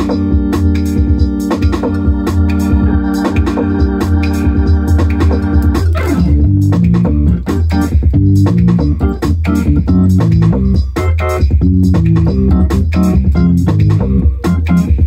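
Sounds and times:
drum machine beat: 0:00.0 - 0:15.0
organ chords: 0:00.0 - 0:15.0.

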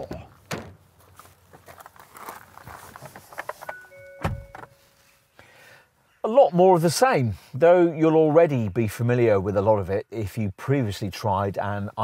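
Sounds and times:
car door thunk: 0:00.0 - 0:00.8, 0:04.1 - 0:04.7
person climbing into car seat: 0:00.0 - 0:04.8
rustling: 0:00.3 - 0:05.2.

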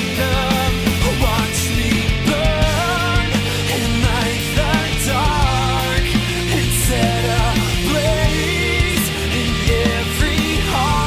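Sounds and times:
drum beat: 0:00.0 - 0:11.0
sustained bass: 0:00.0 - 0:11.0.

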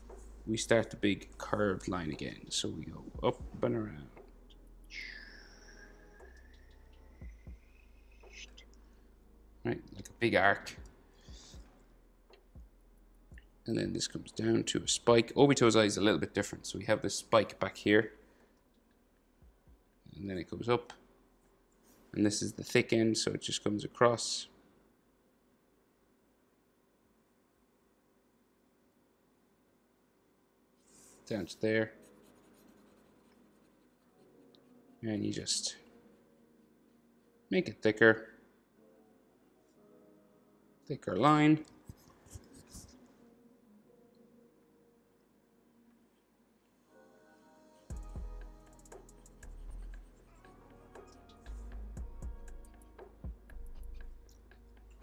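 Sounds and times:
marker pen on paper: 0:30.8 - 0:35.9, 0:41.8 - 0:43.0, 0:47.9 - 0:51.8.

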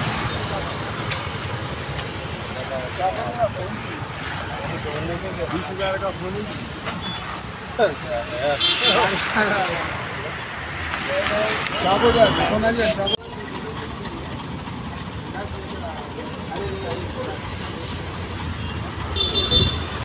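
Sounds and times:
men talking in a crowd: 0:00.0 - 0:19.2
road vehicles rumbling: 0:00.0 - 0:20.0.

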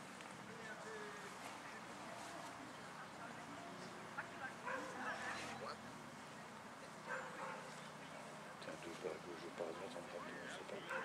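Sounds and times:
murmured voices: 0:00.5 - 0:11.0
faint dog barking: 0:04.6 - 0:05.4, 0:07.0 - 0:07.8, 0:10.8 - 0:11.0.

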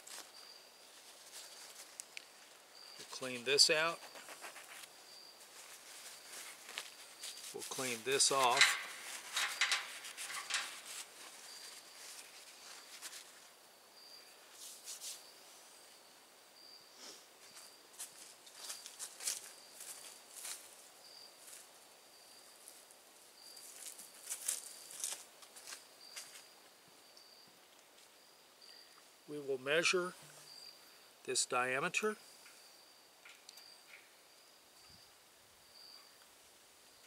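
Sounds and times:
insect chirping: 0:00.0 - 0:37.0
handling rustles and clicks: 0:03.0 - 0:13.4.

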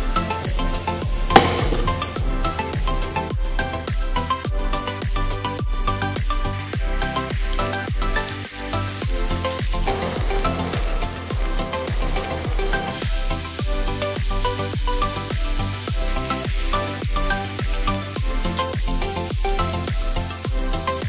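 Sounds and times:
background music with beat: 0:00.0 - 0:21.0
onion sizzling in oil: 0:06.8 - 0:21.0.

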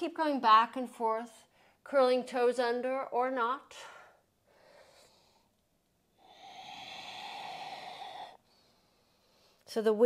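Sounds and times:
woman exhaling: 0:06.2 - 0:08.7.

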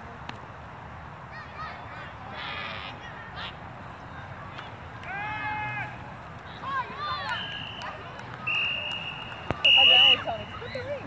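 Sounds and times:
spectators shouting: 0:05.0 - 0:11.0
referee's whistle blasts: 0:07.2 - 0:10.6.

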